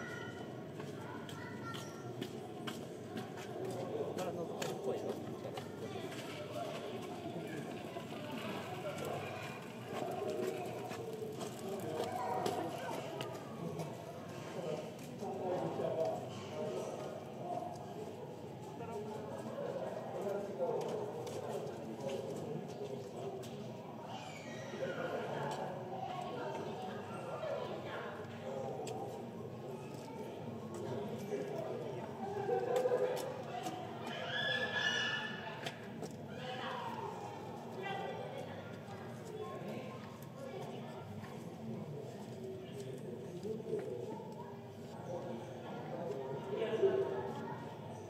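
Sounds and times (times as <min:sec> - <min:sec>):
indistinct chatter of voices: 0:00.0 - 0:48.0.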